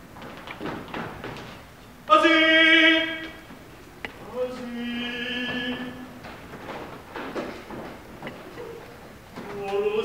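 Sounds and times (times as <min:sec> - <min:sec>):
footsteps on wooden floor: 0:00.1 - 0:01.7, 0:05.4 - 0:09.9.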